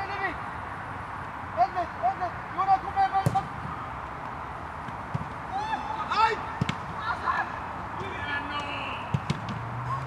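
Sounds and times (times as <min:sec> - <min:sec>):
ball being kicked thud: 0:03.2 - 0:03.5, 0:06.6 - 0:06.9, 0:09.1 - 0:09.6
football players shouting: 0:05.4 - 0:09.1.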